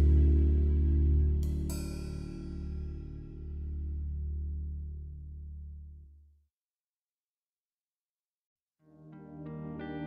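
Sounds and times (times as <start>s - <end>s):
low sustained music notes: 0.0s - 6.2s.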